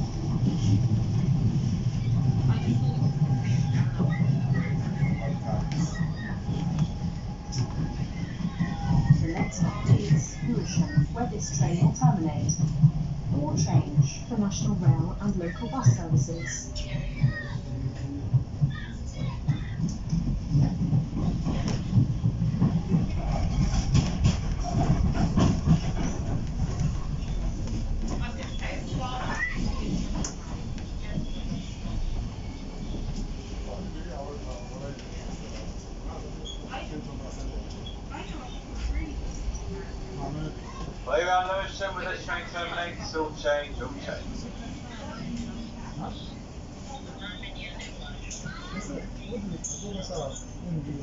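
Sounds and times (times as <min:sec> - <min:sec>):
low rumble of running train: 0:00.0 - 0:51.0
faint indistinct voices: 0:00.2 - 0:51.0.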